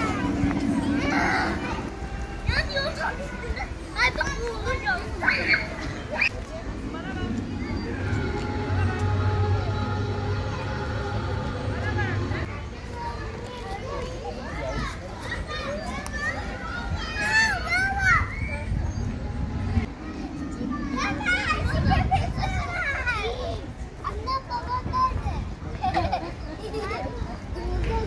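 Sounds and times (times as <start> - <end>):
children shouting: 0.0 - 6.4, 7.6 - 18.8
children calling and chattering: 0.0 - 28.0.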